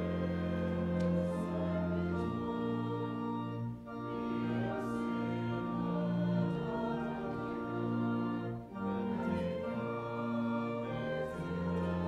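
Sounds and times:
church organ playing hymn chords: 0.0 - 12.0.

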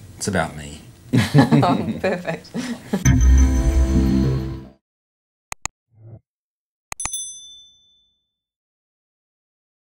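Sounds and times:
mouse click: 5.5 - 5.7
bright bell ding: 7.0 - 8.3.

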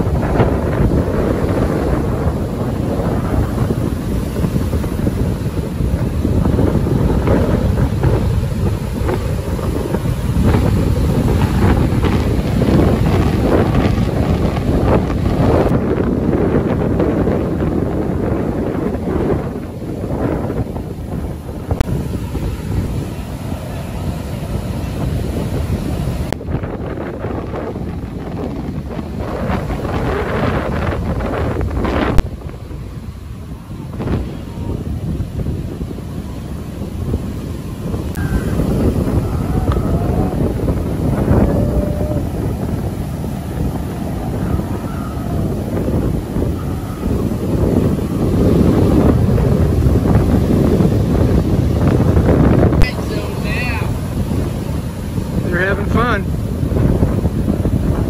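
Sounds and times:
gusting wind on microphone: 0.0 - 58.0
heavy surf breaking: 0.0 - 58.0.

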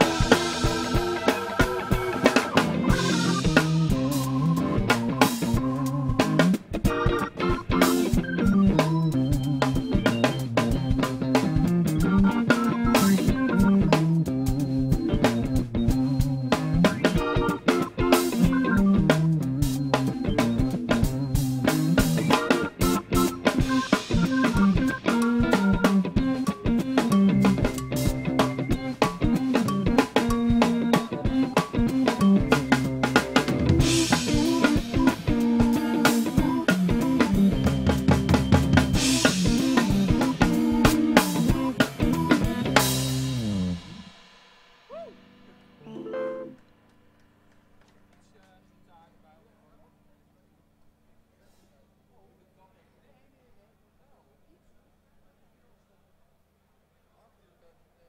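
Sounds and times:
snare and bass drum beat: 0.0 - 44.3
live band playing: 0.0 - 48.2.

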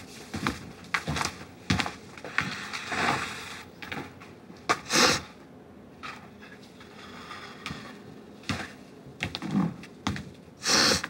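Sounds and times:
woman sniffing: 10.6 - 11.0.

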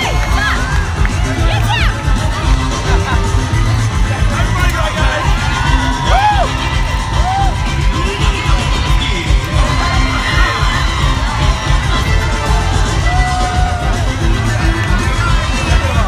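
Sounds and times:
crowd cheering and shouting: 0.0 - 16.0
parade music with bass beat: 0.0 - 16.0
rising and falling whoops: 5.5 - 7.7.

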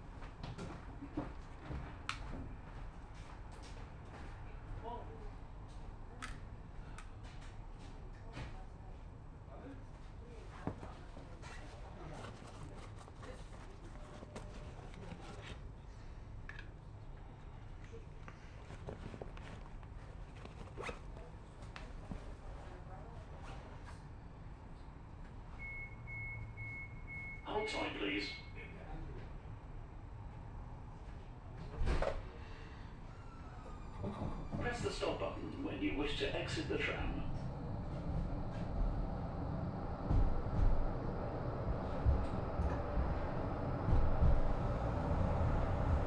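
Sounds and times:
low hum inside a tram: 0.0 - 46.0
tram interior rumble: 28.0 - 46.0.

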